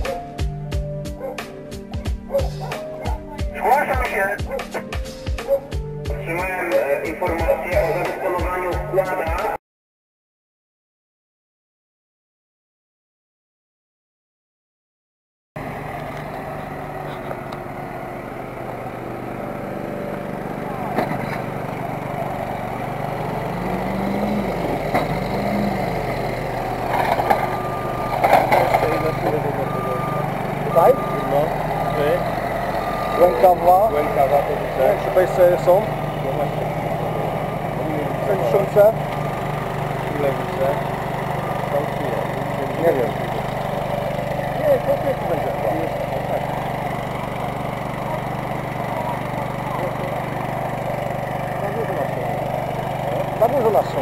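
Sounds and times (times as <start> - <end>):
diesel engine running: 0.0 - 9.6, 15.6 - 54.0
people talking: 2.4 - 4.8, 6.1 - 9.6, 20.5 - 21.5, 27.2 - 32.4, 33.0 - 39.0, 40.0 - 43.5, 44.4 - 46.6, 47.3 - 54.0.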